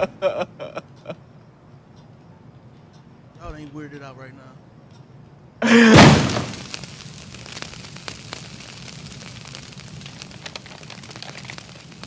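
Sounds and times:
faint ticks: 6.7 - 12.0.

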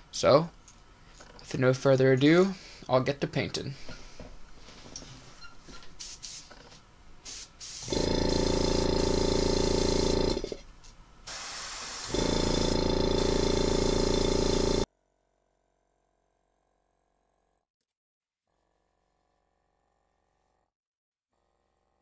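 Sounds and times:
air hissing through airbrush: 5.9 - 6.6, 7.2 - 10.6, 11.3 - 14.9
compressor humming: 7.2 - 14.9.

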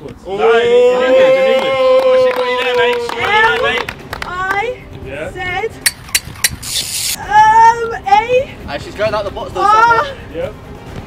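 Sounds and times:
short hiss: 6.6 - 7.2.

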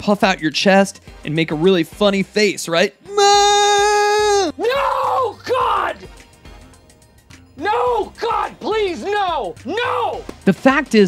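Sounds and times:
man yelling cries: 3.1 - 6.1, 7.6 - 10.2.

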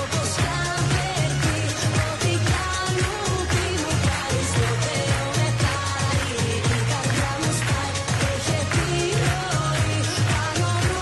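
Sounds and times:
dance beat with heavy bass: 0.0 - 11.0
woman singing: 0.0 - 11.0.

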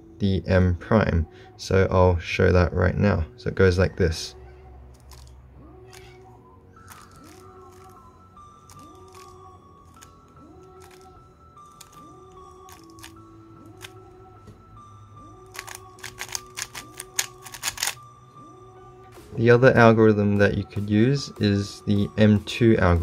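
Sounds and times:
quiet background music: 0.0 - 23.0
speed cube clicking: 15.5 - 18.0.

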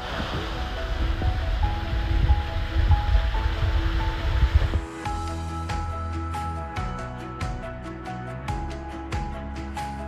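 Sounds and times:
rushing water of waterfall: 0.0 - 5.4
calm background music: 0.0 - 10.0.

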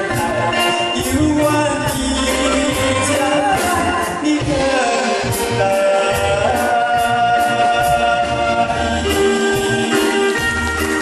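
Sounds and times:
man singing through a microphone: 0.0 - 10.5
orchestra playing: 0.0 - 11.0.

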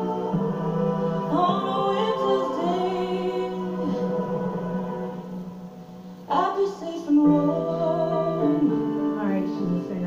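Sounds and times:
choir-like backing voices: 0.0 - 10.0
song from a television: 0.0 - 10.0.

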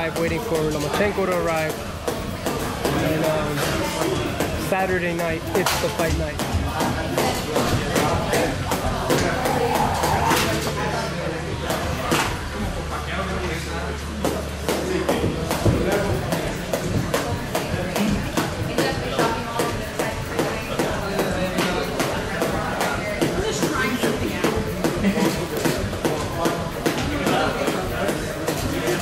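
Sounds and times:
voices: 0.0 - 29.0
jump rope slapping floor: 0.1 - 10.7, 14.2 - 29.0.

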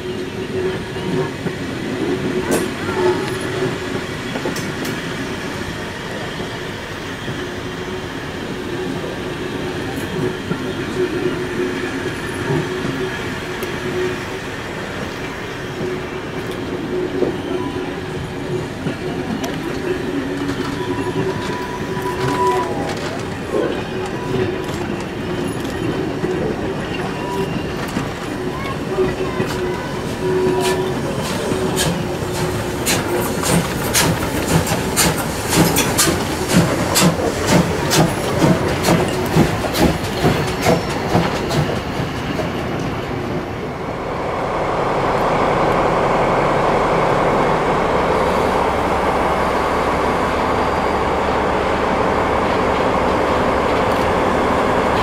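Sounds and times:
steam locomotive passing: 0.0 - 55.0
wheels squealing: 16.8 - 41.9
train wheels clicking over rail joints: 18.2 - 43.5.

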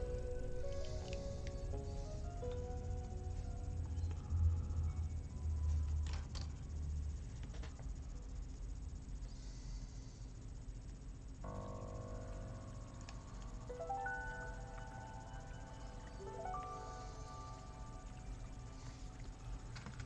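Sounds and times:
soft background music chords: 0.0 - 8.6, 11.4 - 20.0
low steady hum: 0.0 - 20.0.

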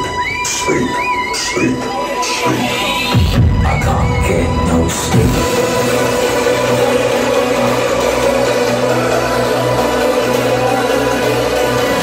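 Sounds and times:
sustained synth chords: 3.1 - 12.0
low bass drone: 3.3 - 12.0.

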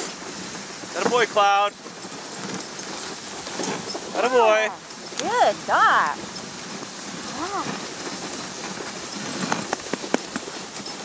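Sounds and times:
sled runners sliding on snow: 0.0 - 11.0.

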